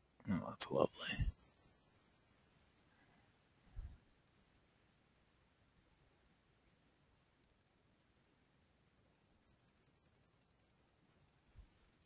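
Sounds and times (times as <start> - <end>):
rapid high-pitched ticking: 9.0 - 12.0.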